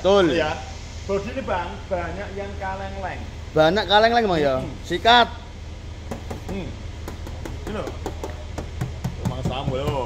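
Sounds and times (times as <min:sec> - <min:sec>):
hand tapping on sheet metal: 0:06.1 - 0:10.0.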